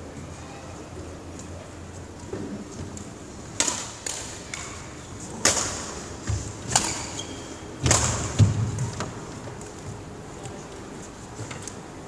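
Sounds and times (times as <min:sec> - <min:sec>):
racket striking shuttlecock: 0:03.5 - 0:09.1.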